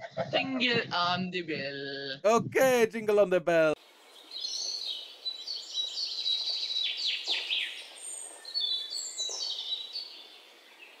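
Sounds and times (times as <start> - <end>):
birds chirping and singing: 4.0 - 11.0.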